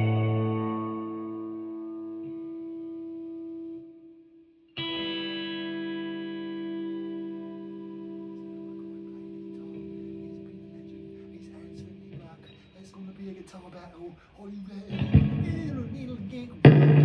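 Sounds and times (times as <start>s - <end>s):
electric guitar chords ringing: 0.0s - 13.5s, 14.9s - 17.0s.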